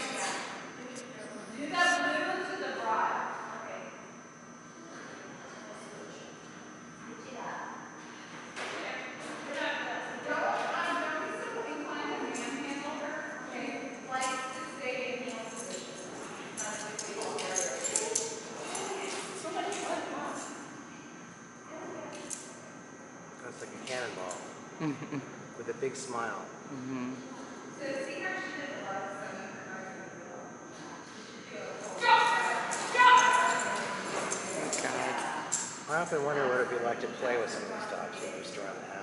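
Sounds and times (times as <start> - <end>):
indistinct voices echoing: 31.7 - 35.8.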